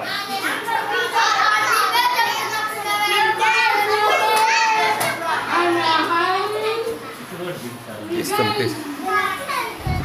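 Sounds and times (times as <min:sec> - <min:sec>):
children speaking in unison: 0:00.0 - 0:07.3, 0:08.4 - 0:10.0.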